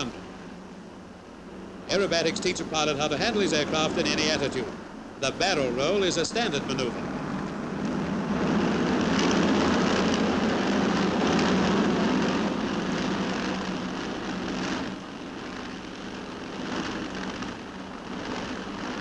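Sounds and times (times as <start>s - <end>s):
aircraft piston engines droning: 0.0s - 19.0s.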